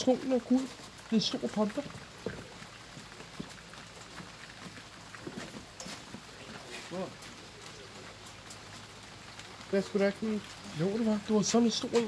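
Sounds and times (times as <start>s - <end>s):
faint drips: 0.0s - 12.0s
light rain pattering: 0.0s - 12.0s.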